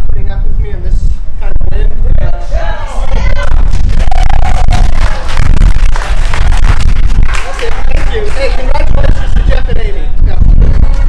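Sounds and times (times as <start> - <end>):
wind buffeting microphone: 0.0 - 11.0
crowd talking and calling out: 1.3 - 11.0.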